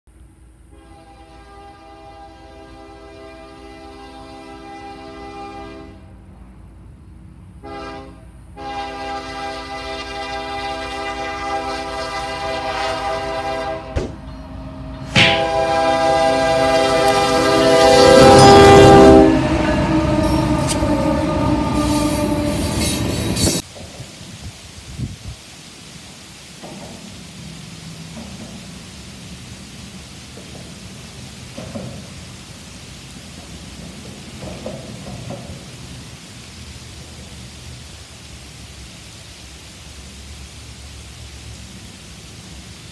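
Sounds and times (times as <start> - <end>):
rain hissing: 0.1 - 42.9
locomotive air horn blasts: 0.7 - 6.2, 7.6 - 23.6
train rumbling and clattering past: 1.0 - 24.7, 26.6 - 38.8.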